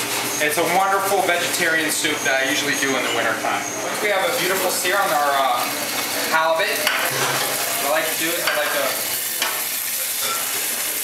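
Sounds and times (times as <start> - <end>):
fish fillet sizzling in a pan: 4.3 - 11.0.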